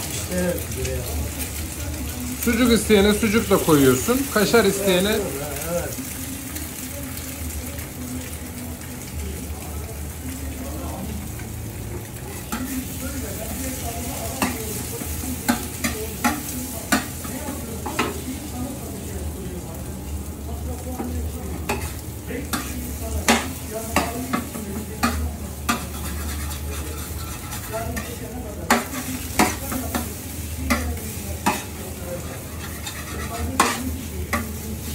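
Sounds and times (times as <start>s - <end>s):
eggs sizzling on griddle: 0.0s - 34.9s
metal spatula scraping and tapping: 21.0s - 30.1s, 30.7s - 34.6s.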